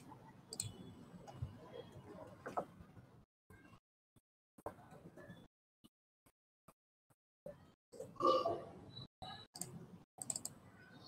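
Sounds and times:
computer mouse clicks: 0.0 - 1.4, 9.6 - 10.6.

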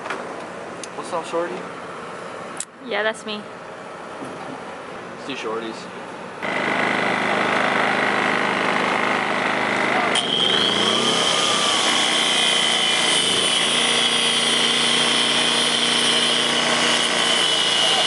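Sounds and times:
power tool cutting rubber hose: 6.4 - 18.0.

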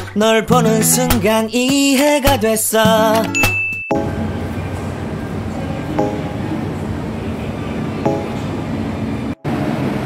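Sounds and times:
metro train hum and hiss: 4.1 - 10.0.

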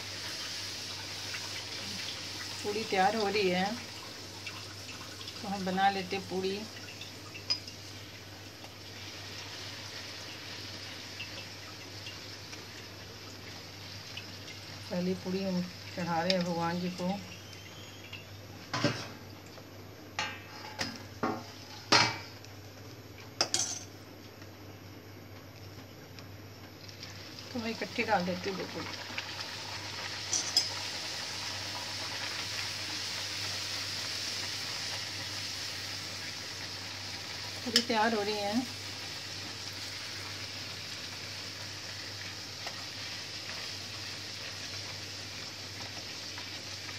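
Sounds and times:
food sizzling in hot oil: 0.0 - 24.1, 26.4 - 46.9.

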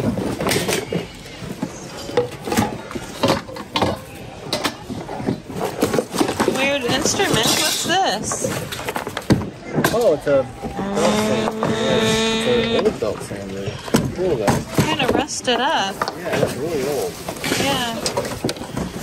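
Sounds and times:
plastic and metal objects clattering: 0.0 - 10.8, 12.8 - 19.0
people chattering: 9.4 - 19.0.

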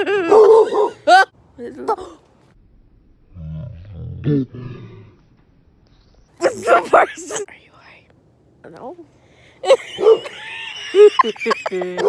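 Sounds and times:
person growling: 3.3 - 5.2.

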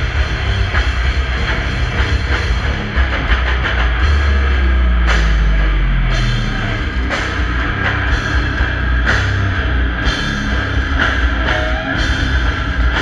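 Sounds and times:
death metal band playing live: 0.0 - 13.0.

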